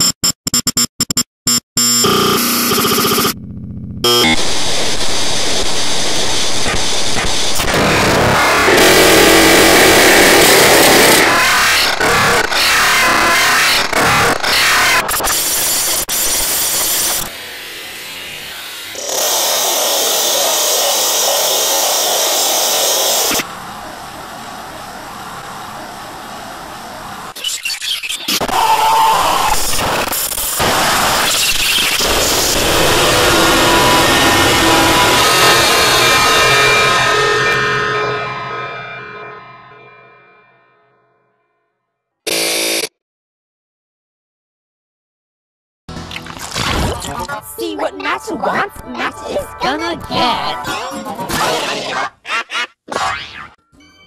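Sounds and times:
harshly distorted music and noise: 1.8 - 39.0, 45.9 - 52.8.

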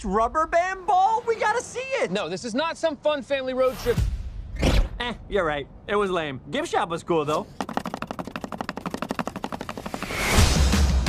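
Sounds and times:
rapid sharp clicks: 7.6 - 10.4.

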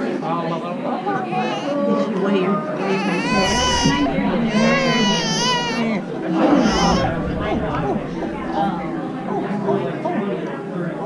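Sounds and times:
adult voices: 0.0 - 11.0
baby crying call: 2.8 - 7.2.

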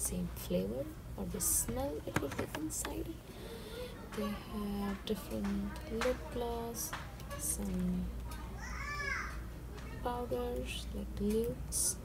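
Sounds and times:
steady low hum: 0.0 - 8.6
child calling out: 8.6 - 9.4.

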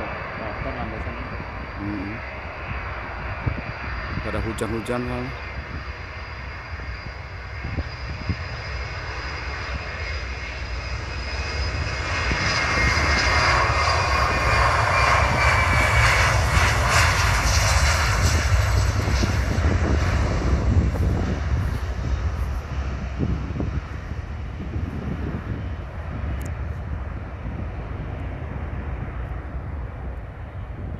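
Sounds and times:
jet airliner taking off: 0.0 - 30.9.

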